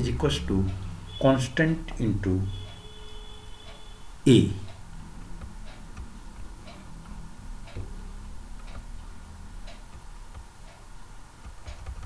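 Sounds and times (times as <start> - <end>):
low steady hum: 0.0 - 12.0
regular ticking: 0.0 - 12.0.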